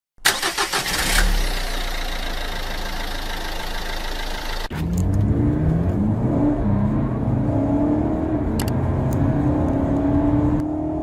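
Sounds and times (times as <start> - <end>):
car engine cranking and idling: 0.2 - 10.7.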